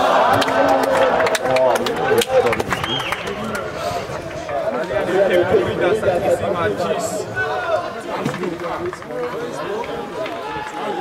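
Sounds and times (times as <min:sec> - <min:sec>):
voices calling out and talking: 0:00.0 - 0:11.0.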